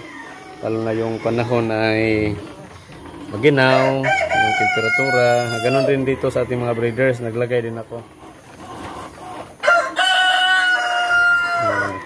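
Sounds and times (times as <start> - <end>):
rooster crowing: 3.6 - 6.6, 9.6 - 12.0.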